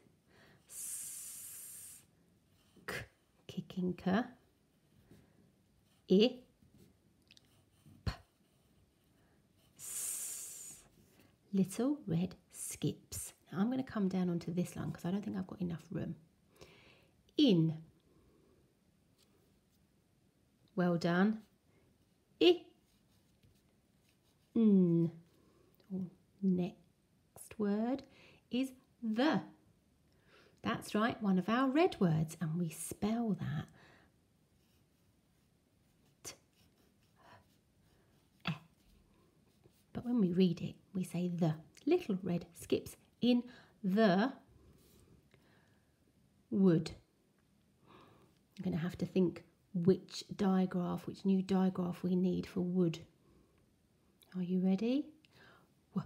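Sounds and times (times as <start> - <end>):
pencil scratching on paper: 6.8 - 9.9, 22.8 - 24.6, 34.5 - 40.3
pencil writing on paper: 34.6 - 38.9.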